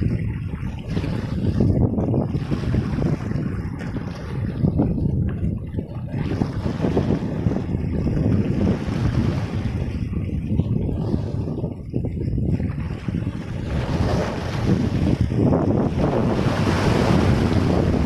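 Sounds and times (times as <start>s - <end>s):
waves washing over rocky shore: 0.0s - 5.3s, 12.4s - 18.0s
wind buffeting microphone: 0.0s - 18.0s.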